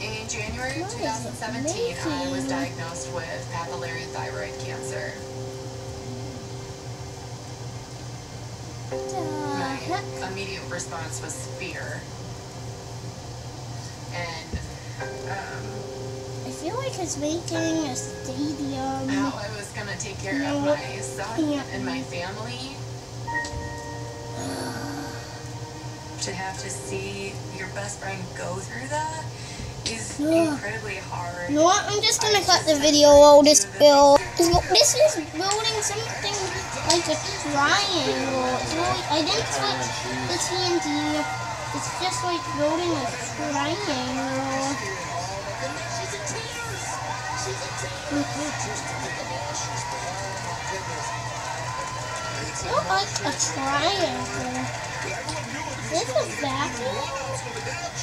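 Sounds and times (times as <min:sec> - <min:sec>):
low steady hum: 0:00.0 - 0:50.8
soft television music: 0:00.0 - 0:58.0.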